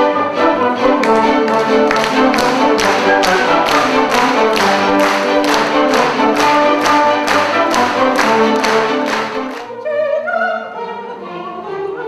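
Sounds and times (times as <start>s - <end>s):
chamber orchestra dance tune: 0.0s - 9.8s
sharp percussive beats: 1.0s - 9.6s.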